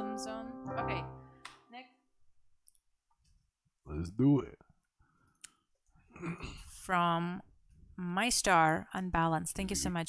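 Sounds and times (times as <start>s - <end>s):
woman speaking: 0.0s - 2.0s, 6.8s - 7.4s, 8.0s - 10.0s.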